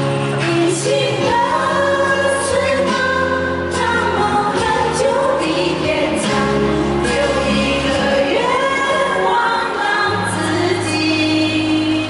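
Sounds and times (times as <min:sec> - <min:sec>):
backing music: 0:00.0 - 0:12.0
women singing into microphones: 0:00.0 - 0:12.0.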